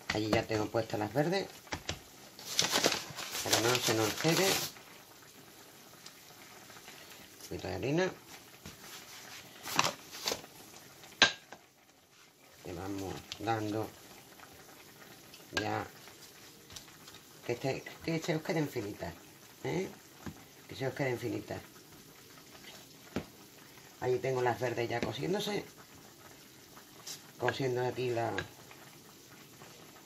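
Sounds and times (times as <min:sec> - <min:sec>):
vegetables sizzling in frying pan: 0:00.0 - 0:30.0.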